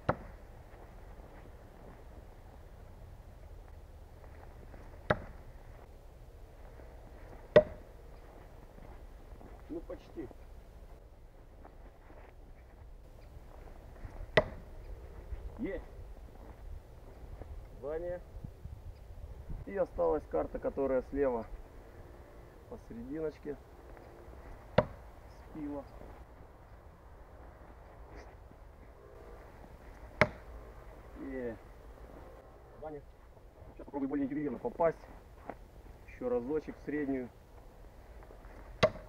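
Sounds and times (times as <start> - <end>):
knife striking wooden log: 0.0 - 0.3, 5.1 - 5.4, 7.5 - 7.8, 14.3 - 14.7, 24.8 - 25.0, 30.2 - 30.5, 38.8 - 39.0.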